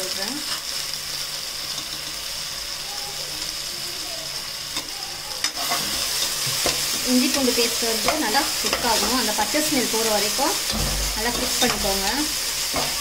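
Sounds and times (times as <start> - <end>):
onions sizzling in hot oil: 0.0 - 13.0.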